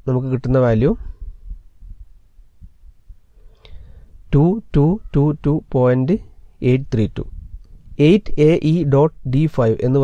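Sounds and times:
steady low hum: 0.0 - 10.0
soft low thumps: 1.0 - 3.4.

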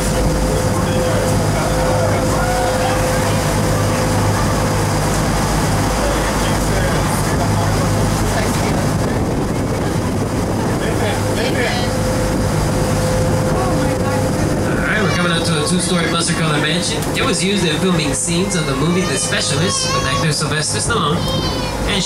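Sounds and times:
boat engine droning: 0.0 - 22.0
rushing water: 0.0 - 22.0.

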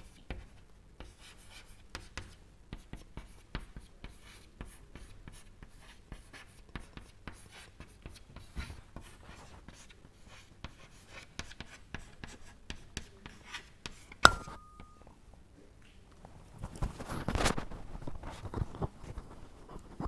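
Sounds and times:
chalk tapping and scratching: 0.0 - 15.0.

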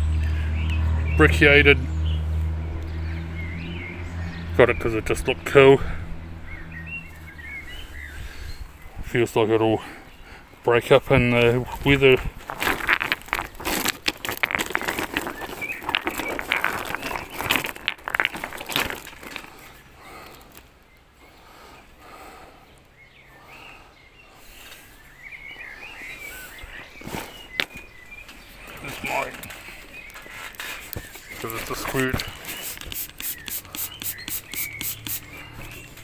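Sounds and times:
rocks and plastic bag rustling: 11.4 - 21.0, 28.7 - 34.2.

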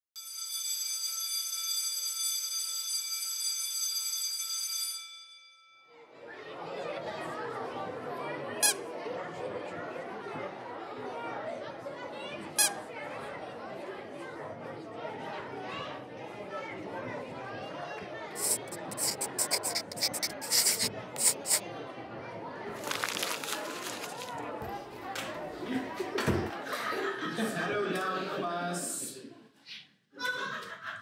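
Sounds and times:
school bell ringing: 0.2 - 6.0
children chattering: 6.0 - 28.0
squeaky toy hammer squeak: 8.6 - 8.8, 12.6 - 12.8.

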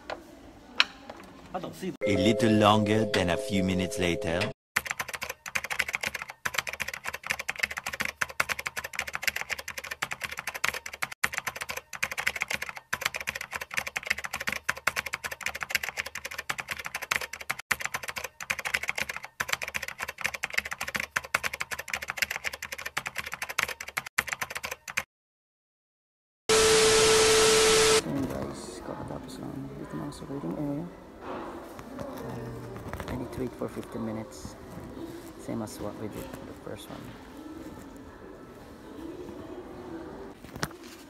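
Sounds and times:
held tone: 2.0 - 4.6, 26.5 - 28.0
rapid keyboard typing clicks: 4.3 - 25.1
loud steady hiss: 26.5 - 28.0.

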